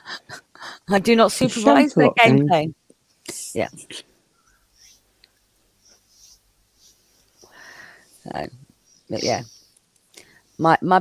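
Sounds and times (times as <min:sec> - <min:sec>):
faint breathy sounds: 0:04.0 - 0:10.6.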